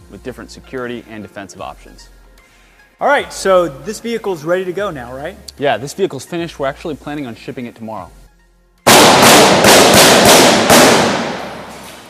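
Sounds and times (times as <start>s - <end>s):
loud gunshots: 8.9s - 11.8s
ringing echo of gunshots: 8.9s - 12.0s.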